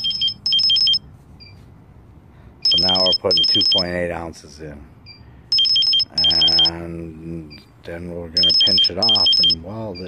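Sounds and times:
rapid high electronic beeps: 0.0s - 1.0s, 2.6s - 3.9s, 5.1s - 6.8s, 8.4s - 10.0s.

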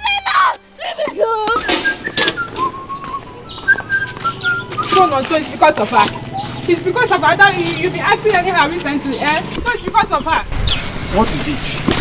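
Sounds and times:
person whistling a slow tune: 1.6s - 5.1s.

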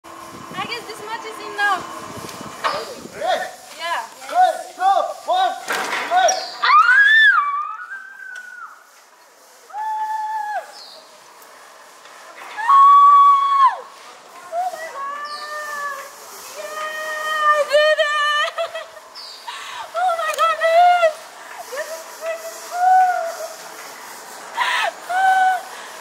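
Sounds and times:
women screaming: 6.6s - 8.8s, 12.6s - 13.9s, 24.8s - 25.7s
women laughing: 17.5s - 21.0s.

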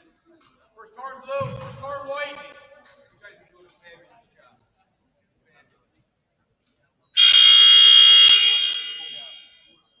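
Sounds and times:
scoreboard buzzer: 7.2s - 9.5s.

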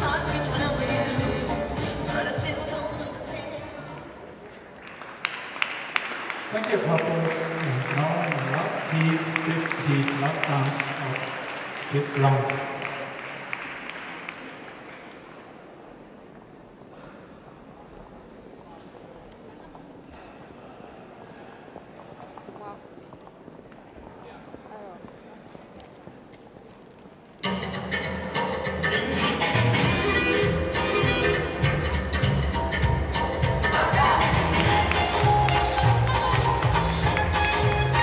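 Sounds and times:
quickstep dance music: 0.0s - 4.0s, 28.3s - 38.0s
individual claps: 4.8s - 15.3s, 34.5s - 38.0s
audience applause: 4.8s - 15.7s, 34.3s - 38.0s.

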